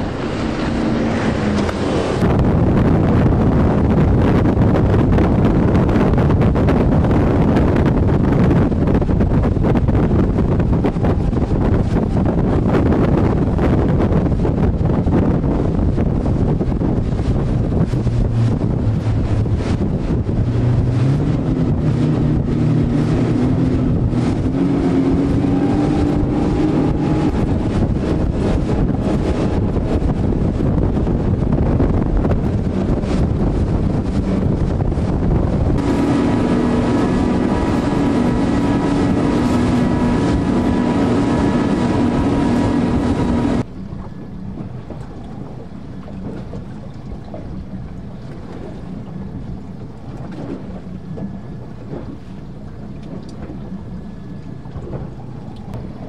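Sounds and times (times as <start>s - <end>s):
outboard motor engines droning: 0.0s - 56.0s
rushing water: 0.0s - 56.0s
wind buffeting microphone: 0.0s - 56.0s.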